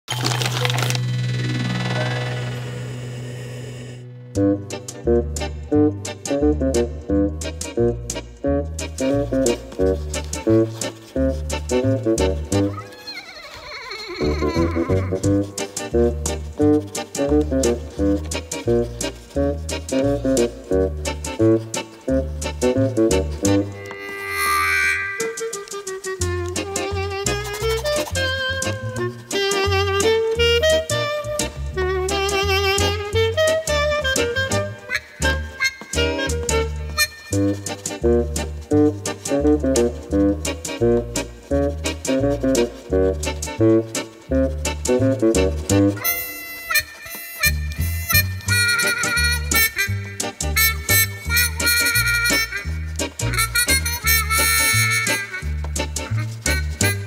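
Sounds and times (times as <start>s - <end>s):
instrumental music: 0.2s - 57.0s
steady low drone: 0.7s - 7.3s
synthesized noise burst: 0.8s - 4.8s.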